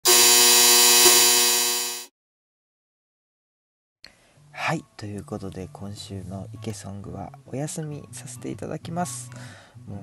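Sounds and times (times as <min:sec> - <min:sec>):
electronic buzzing tone: 0:00.0 - 0:02.1.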